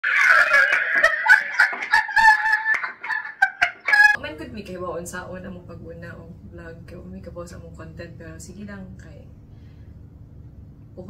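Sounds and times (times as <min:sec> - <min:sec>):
women laughing loudly: 0:00.0 - 0:04.2.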